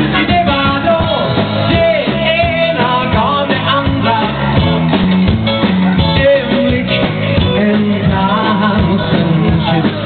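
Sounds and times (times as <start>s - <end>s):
drum kit steady beat: 0.0s - 10.0s
electric guitar: 0.0s - 10.0s.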